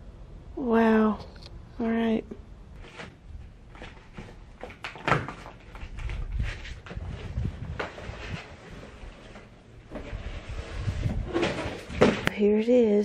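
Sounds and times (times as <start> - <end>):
cardboard scraping and rustling: 2.8 - 12.4.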